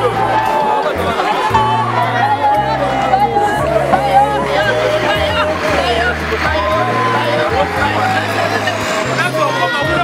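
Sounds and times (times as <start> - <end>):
women wailing and crying: 1.3 - 5.4.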